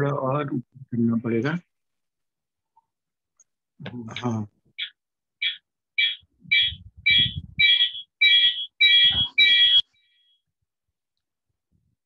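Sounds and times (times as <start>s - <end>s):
electronic alarm beeping: 4.8s - 10.4s.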